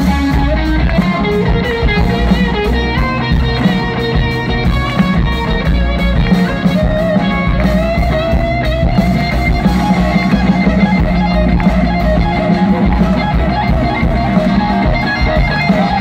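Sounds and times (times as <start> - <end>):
bass guitar: 0.0 - 16.0
drums: 0.0 - 16.0
electric guitar lead line: 0.0 - 16.0.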